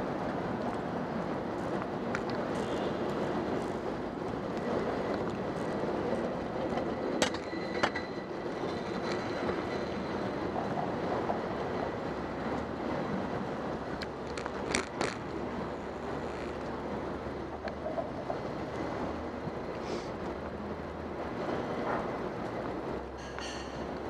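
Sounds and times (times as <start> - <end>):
traffic rumble: 0.0 - 24.0
bicycle clicks: 13.9 - 15.3.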